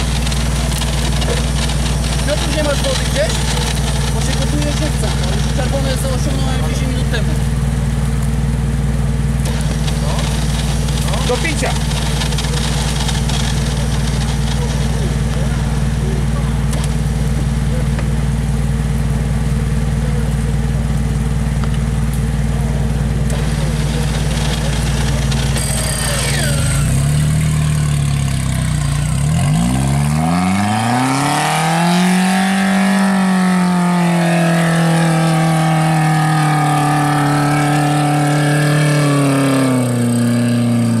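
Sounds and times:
off-road vehicle engine revving: 0:00.0 - 0:41.0.

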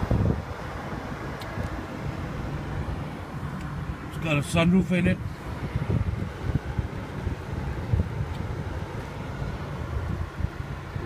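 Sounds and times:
wind buffeting microphone: 0:00.0 - 0:02.2, 0:05.2 - 0:11.0.

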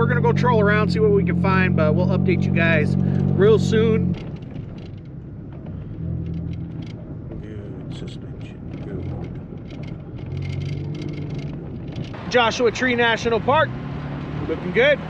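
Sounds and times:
vehicle engine hum: 0:00.0 - 0:15.0
tyre rumble on dirt road: 0:03.0 - 0:12.3
light rattles and knocks: 0:03.1 - 0:12.2.

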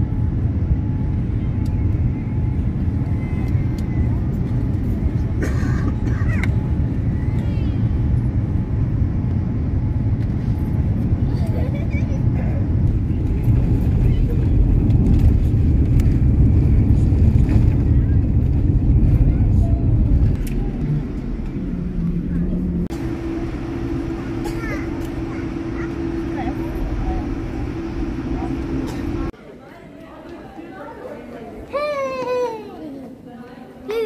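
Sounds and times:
jet engines rumbling in cabin: 0:00.0 - 0:29.4.

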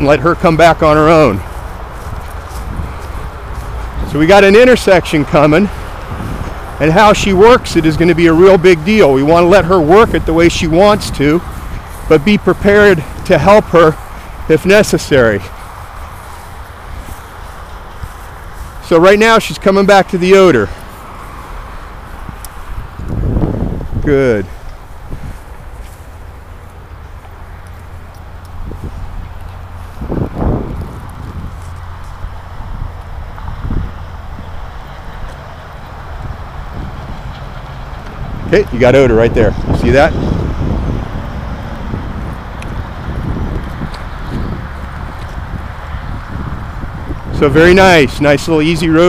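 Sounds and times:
road traffic noise: 0:00.0 - 0:49.0
wind rumbling on microphone: 0:00.0 - 0:49.0
faint ticks: 0:26.6 - 0:28.6.

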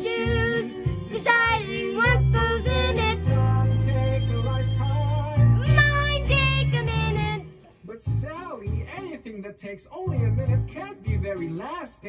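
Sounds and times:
girl singing: 0:00.0 - 0:03.8, 0:05.6 - 0:07.5
music with steady bass: 0:00.0 - 0:09.2, 0:10.1 - 0:11.6.

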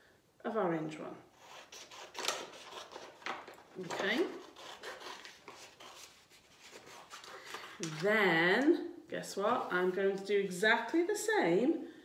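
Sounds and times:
paper rustling: 0:01.7 - 0:08.1.

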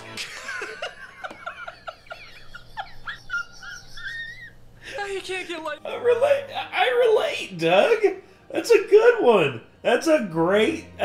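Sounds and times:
man laughing: 0:00.0 - 0:05.1.

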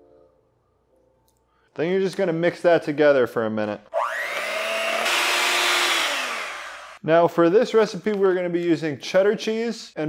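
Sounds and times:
electric hand mixer whirring: 0:03.9 - 0:07.0.

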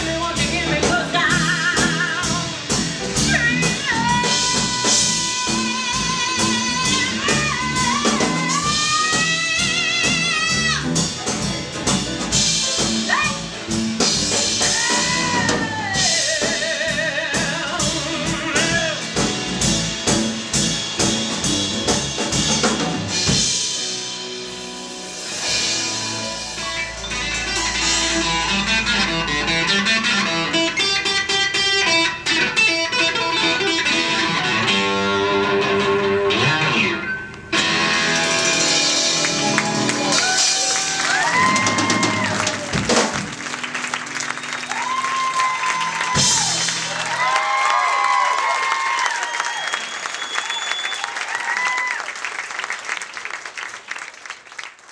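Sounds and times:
electric bass: 0:00.0 - 0:45.2
drums: 0:00.0 - 0:54.0
applause: 0:39.2 - 0:54.9.

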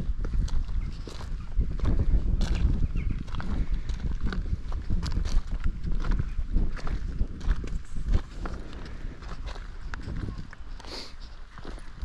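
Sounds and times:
footsteps on gravel: 0:00.0 - 0:12.0
wind rumble on microphone: 0:00.0 - 0:12.0.

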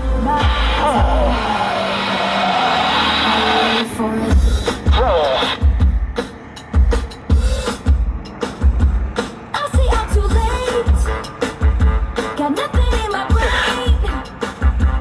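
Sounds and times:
rushing build-up sound: 0:00.3 - 0:12.3
song with steady drum beat: 0:04.3 - 0:15.0.

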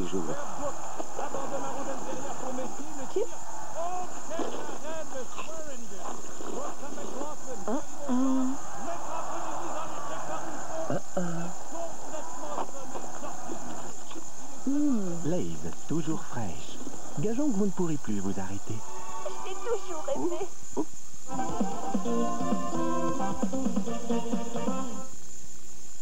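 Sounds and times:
wordless vocal hums and murmurs: 0:00.0 - 0:18.9, 0:19.5 - 0:25.1.

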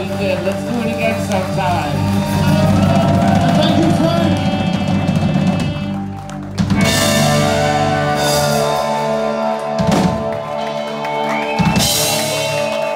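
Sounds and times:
bass notes: 0:00.0 - 0:12.9
drum kit: 0:00.0 - 0:12.9
electric guitar: 0:00.0 - 0:12.9
keyboards: 0:00.0 - 0:12.9
saxophone: 0:01.7 - 0:12.9.

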